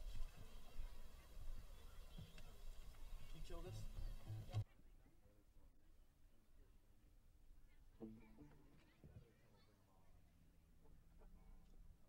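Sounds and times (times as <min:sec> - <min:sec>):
faint voices: 0:00.0 - 0:05.7.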